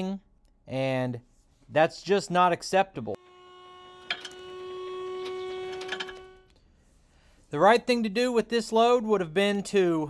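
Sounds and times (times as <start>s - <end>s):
hydraulic pump motor whining: 3.2s - 6.6s.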